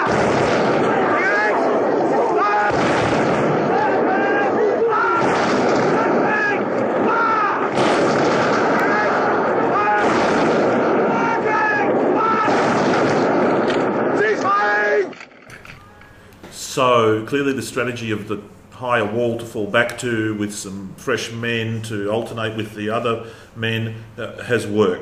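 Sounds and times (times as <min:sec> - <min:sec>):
many men shouting: 0:00.0 - 0:13.2, 0:14.0 - 0:15.2.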